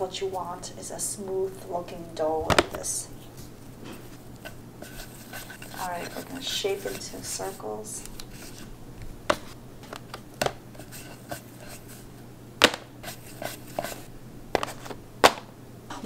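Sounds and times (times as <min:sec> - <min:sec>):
dough knocking on wooden board: 0:12.6 - 0:12.9.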